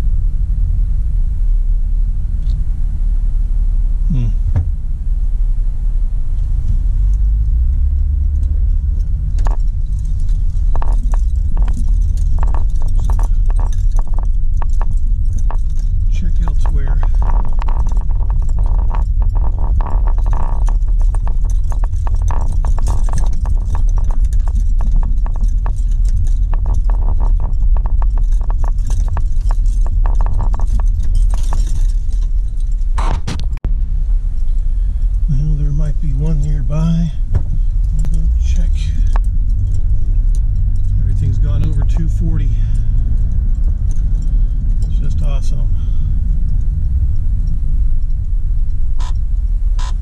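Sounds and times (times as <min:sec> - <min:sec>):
car engine and tyre rumble: 0:00.0 - 0:50.0
rattles and knocks over rough road: 0:04.4 - 0:50.0.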